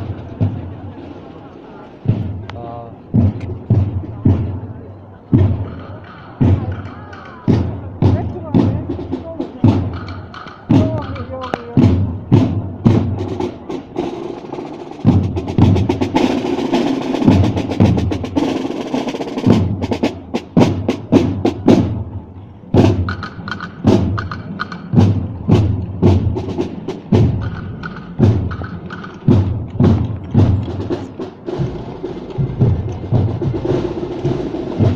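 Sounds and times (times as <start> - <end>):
marching snare drums: 0.0 - 34.9
snare drum roll: 5.4 - 22.0, 22.8 - 34.9.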